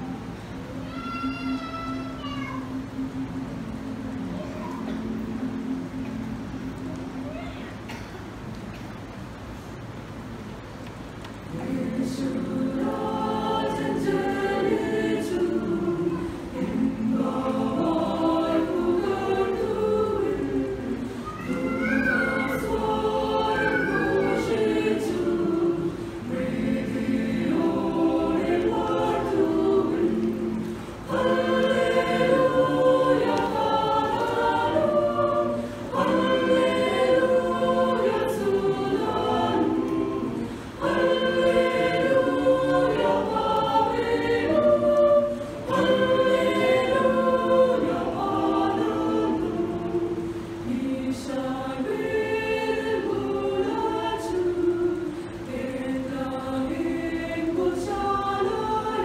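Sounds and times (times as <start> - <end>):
mixed choir singing a hymn: 11.4 - 59.0.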